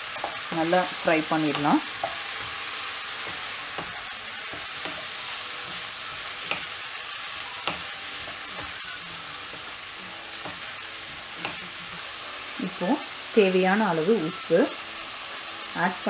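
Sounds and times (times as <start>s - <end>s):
mushrooms sizzling in a wok: 0.0s - 16.0s
spatula knocking and scraping pan: 0.2s - 6.8s, 7.6s - 12.1s.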